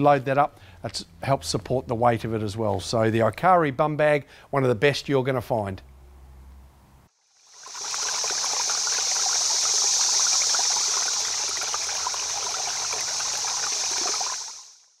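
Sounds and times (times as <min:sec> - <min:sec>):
running water trickling: 0:07.3 - 0:15.0.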